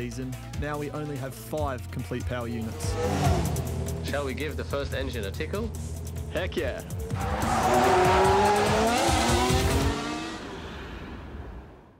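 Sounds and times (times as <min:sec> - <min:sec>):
race car engine revving: 0:02.6 - 0:11.4.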